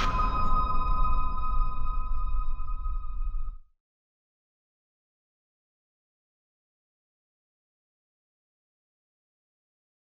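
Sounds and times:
low rumble: 0:00.0 - 0:03.6
sustained ringing tone: 0:00.0 - 0:03.6.

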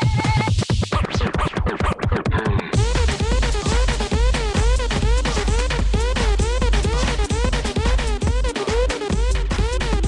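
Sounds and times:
electronic dance track: 0:00.0 - 0:10.0
vinyl record scratching: 0:00.0 - 0:10.0.

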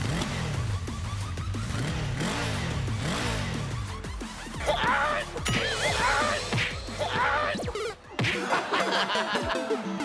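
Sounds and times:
engine revving: 0:00.0 - 0:07.0
music: 0:00.0 - 0:10.0.

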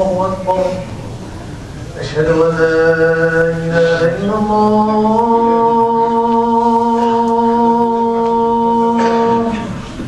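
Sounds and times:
man chanting: 0:00.0 - 0:00.9, 0:02.0 - 0:09.8.

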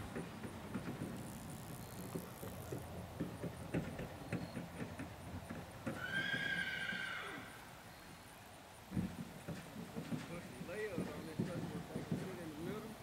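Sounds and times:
knocks: 0:02.1 - 0:06.0, 0:08.9 - 0:12.9
horse whinnying: 0:05.9 - 0:07.6.

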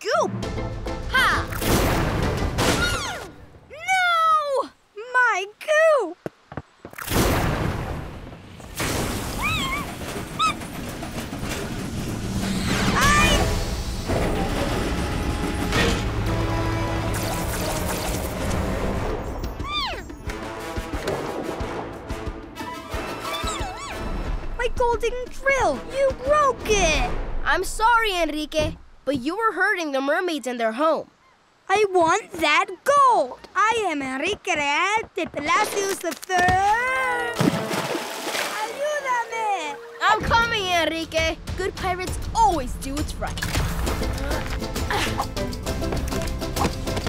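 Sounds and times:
cartoon background music: 0:00.0 - 0:03.3, 0:12.7 - 0:27.3, 0:38.5 - 0:47.0.

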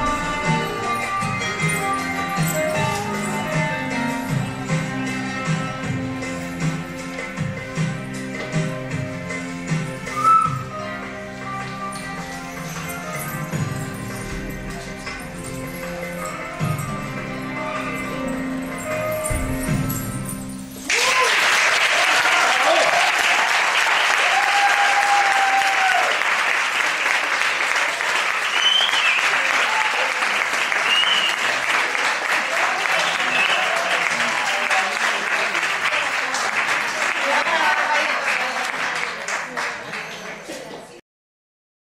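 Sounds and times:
dance music: 0:00.0 - 0:21.3
audience applauding: 0:20.8 - 0:41.0.

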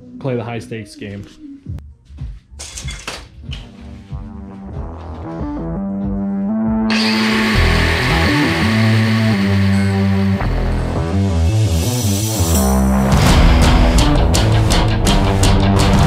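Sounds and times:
angle grinder cutting steel: 0:06.9 - 0:12.6
rock music: 0:06.9 - 0:16.0.

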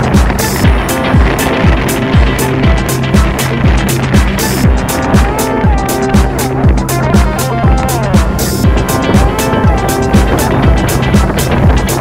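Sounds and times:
electronic dance music: 0:00.0 - 0:12.0.

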